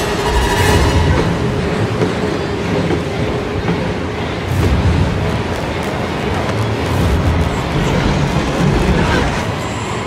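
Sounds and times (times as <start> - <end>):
rumbling horror drone: 0.0 - 10.0.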